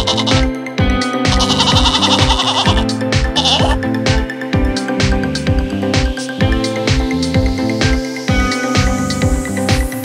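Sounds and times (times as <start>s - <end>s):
sheep bleating: 0.0s - 0.5s, 1.2s - 3.8s
electronic dance music: 0.0s - 10.0s.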